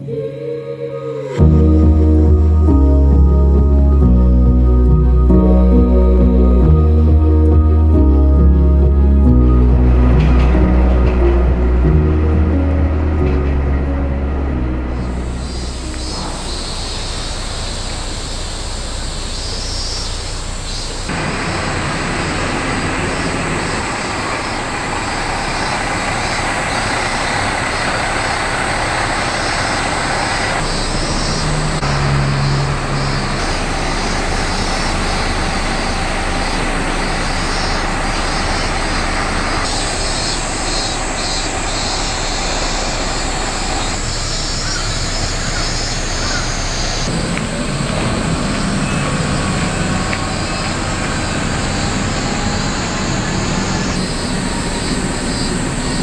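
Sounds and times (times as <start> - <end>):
diesel engine running: 1.4 - 56.0.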